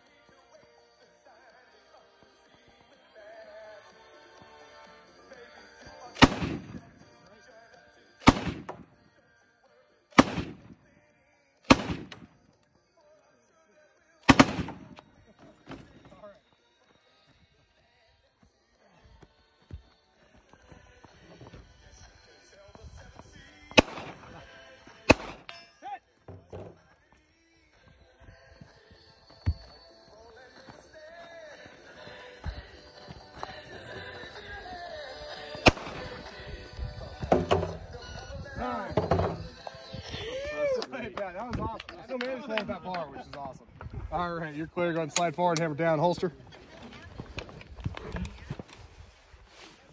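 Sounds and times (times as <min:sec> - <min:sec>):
rifle shots: 0:06.2 - 0:06.8, 0:08.2 - 0:08.8, 0:10.2 - 0:10.7, 0:11.7 - 0:12.2, 0:14.3 - 0:15.0, 0:23.8 - 0:24.3, 0:25.1 - 0:25.5, 0:35.6 - 0:36.2.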